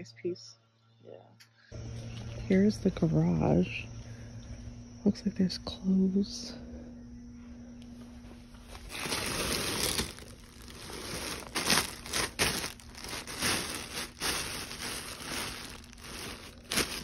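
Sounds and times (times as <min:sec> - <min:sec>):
plastic bags crinkling: 0:08.7 - 0:17.0.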